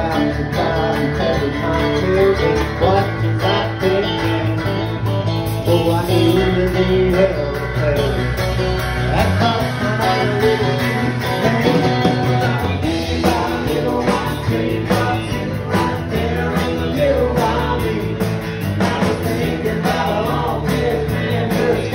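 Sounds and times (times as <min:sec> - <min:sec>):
drum kit beat: 0:00.0 - 0:21.9
electric bass: 0:00.0 - 0:21.9
electric guitar: 0:00.0 - 0:21.9
strummed acoustic guitar: 0:00.0 - 0:21.9.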